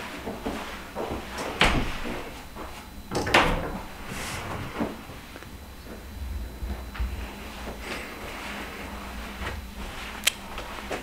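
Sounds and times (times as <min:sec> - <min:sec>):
closet doors being pulled open: 0:00.4 - 0:11.0.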